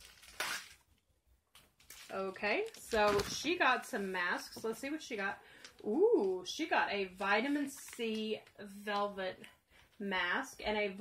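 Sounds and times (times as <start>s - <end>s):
plastic mailer crinkling: 0.0s - 0.9s, 1.8s - 3.9s.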